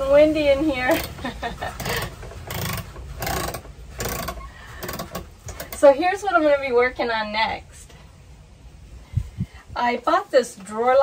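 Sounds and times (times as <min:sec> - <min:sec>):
low wind rumble: 0:00.0 - 0:11.0.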